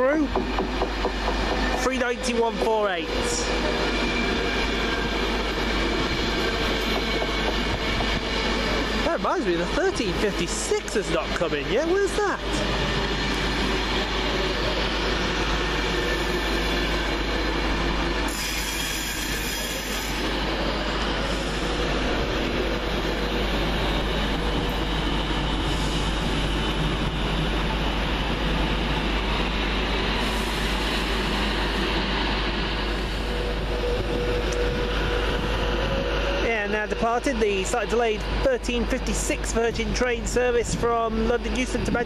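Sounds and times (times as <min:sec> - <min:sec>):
train wheels on rail: 0:00.0 - 0:42.0.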